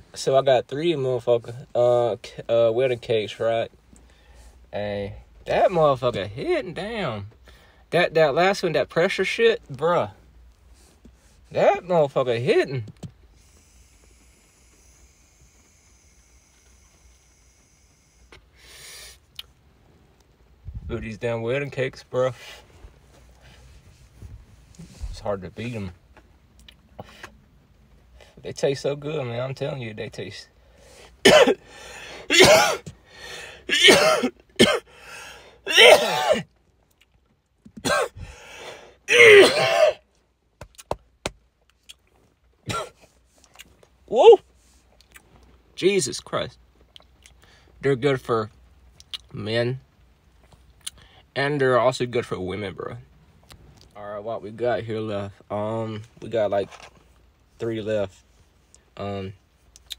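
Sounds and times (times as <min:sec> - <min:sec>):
vape pen hiss: 0:13.3 - 0:19.2
man coughing hard: 0:31.2 - 0:31.6, 0:32.3 - 0:32.9, 0:33.7 - 0:34.9, 0:35.7 - 0:36.5, 0:37.8 - 0:38.2, 0:39.1 - 0:40.0, 0:42.7 - 0:43.0
breathy exhale: 0:38.2 - 0:39.0.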